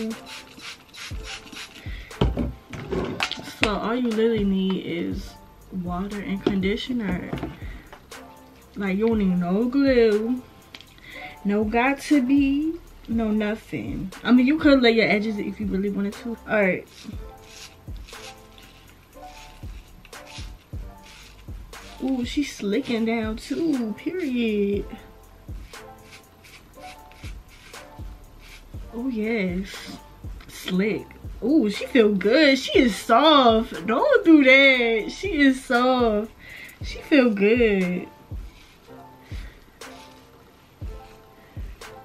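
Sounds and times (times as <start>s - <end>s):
background music with soft beat: 0.0s - 42.0s.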